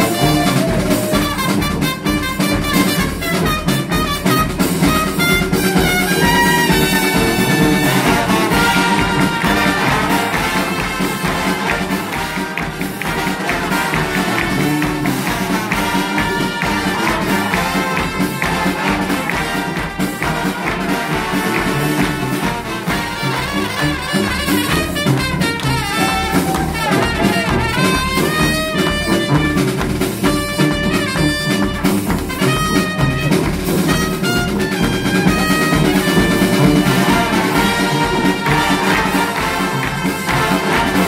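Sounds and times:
steady beat: 0.0 - 41.0
trumpets and trombones: 0.0 - 41.0.

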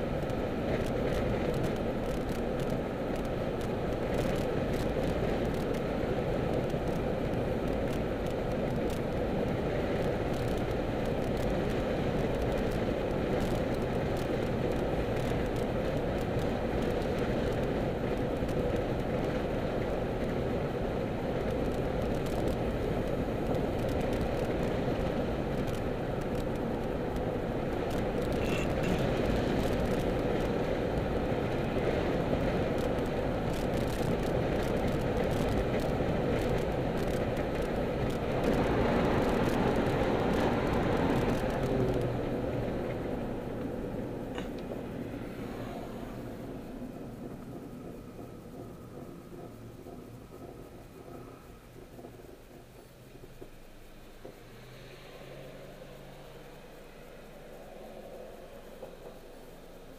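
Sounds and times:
car road and engine noise: 0.0 - 59.9.

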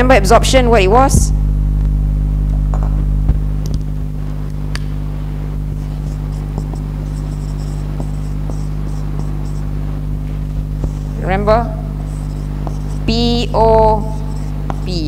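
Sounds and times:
low electrical hum: 0.0 - 15.0
marker scratching on whiteboard: 5.7 - 15.0.

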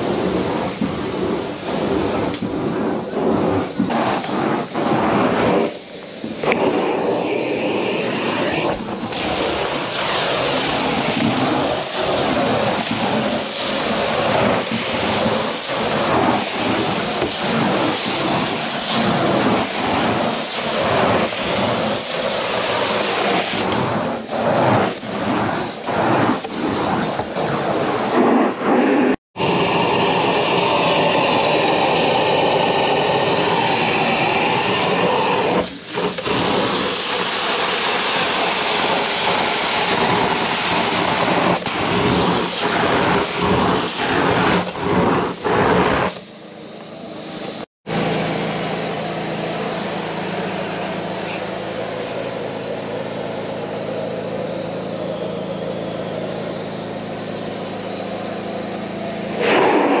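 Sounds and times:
carpet extraction suction rush: 0.0 - 60.0.

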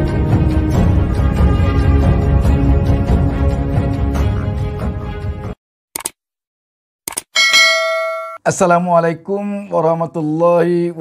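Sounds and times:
notification bell ding: 7.4 - 8.4.

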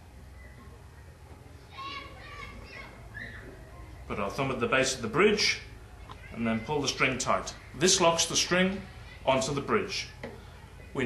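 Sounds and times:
low steady hum: 0.0 - 11.0
faint child's voice: 0.7 - 4.0.

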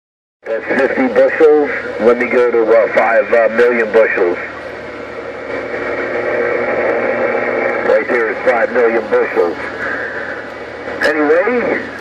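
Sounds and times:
voice over radio: 0.4 - 4.5, 7.8 - 9.9, 10.9 - 12.0
faint hum: 0.4 - 12.0
radio static rushing: 0.5 - 12.0.

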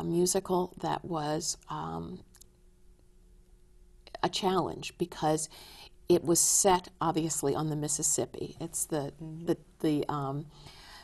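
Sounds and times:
woman's voice: 0.0 - 2.2, 4.1 - 5.5, 6.1 - 10.5
steady low hum: 0.0 - 11.0.

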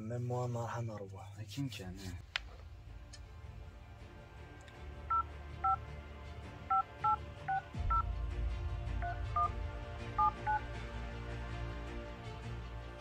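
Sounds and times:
touch-tone dialling beeps: 5.1 - 5.8, 6.7 - 8.0, 10.2 - 10.6.

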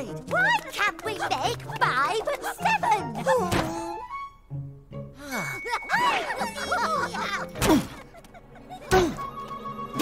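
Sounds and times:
background music sustained notes: 0.0 - 10.0
cartoon thunk: 3.4 - 3.8.

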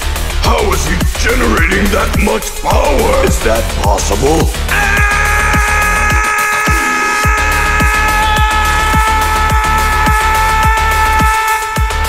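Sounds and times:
deep kick drum: 6.7 - 10.8.

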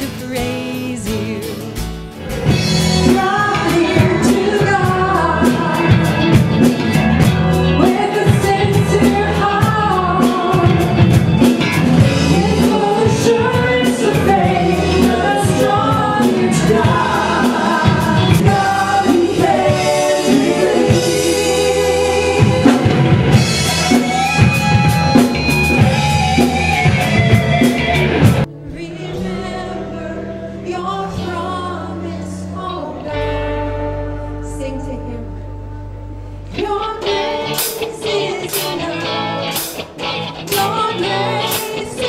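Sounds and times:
person singing: 0.0 - 2.0, 2.8 - 6.6, 7.7 - 27.8, 28.4 - 35.6, 36.5 - 39.7, 40.4 - 42.0
drum kit: 0.0 - 29.3, 36.5 - 42.0
worship band playing: 0.0 - 42.0.

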